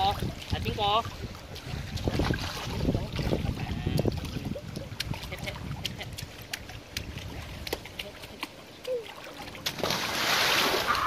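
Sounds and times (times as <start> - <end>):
wind buffeting microphone: 0.0 - 7.9
water splashing in pool: 0.0 - 11.0.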